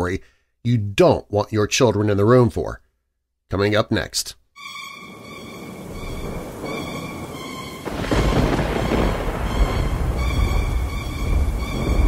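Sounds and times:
thunder clap and rumble: 5.1 - 12.0.

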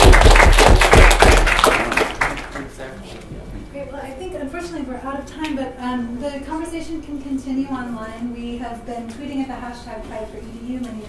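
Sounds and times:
audience applauding: 0.0 - 2.8.

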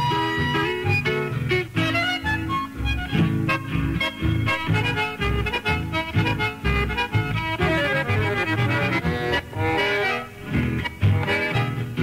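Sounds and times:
accordion-led folk ensemble: 0.0 - 12.0.

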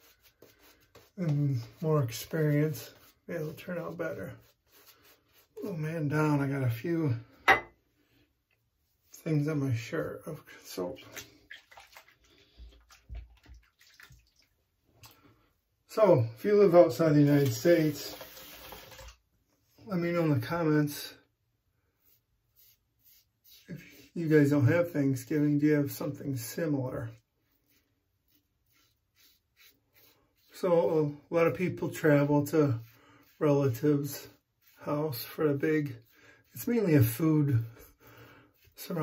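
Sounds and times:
water splashing in sink: 10.9 - 15.2, 17.4 - 19.2.

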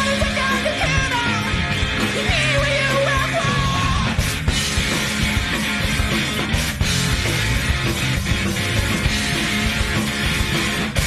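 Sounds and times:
high wavering lead vocal: 0.0 - 4.2
rock band playing: 0.0 - 11.0.

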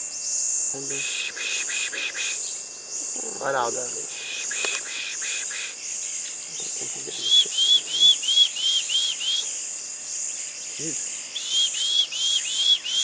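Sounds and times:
insects chorus: 0.0 - 13.0
bird whistling: 1.0 - 2.5, 4.2 - 5.8, 7.2 - 9.5, 11.4 - 13.0.

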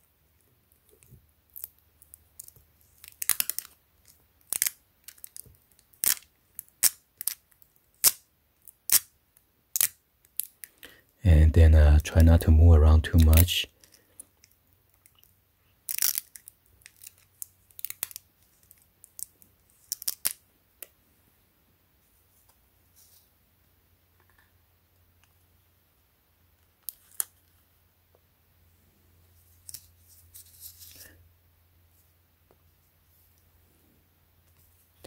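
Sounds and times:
sticker crackling and clicking: 0.9 - 7.4.

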